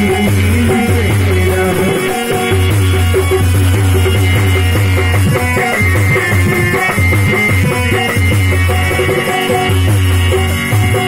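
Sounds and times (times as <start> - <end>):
harmonium melody: 0.0 - 11.0.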